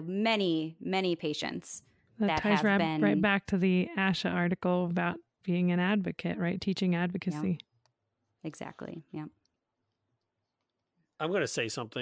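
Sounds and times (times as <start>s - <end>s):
person saying yeah: 2.4s - 3.2s.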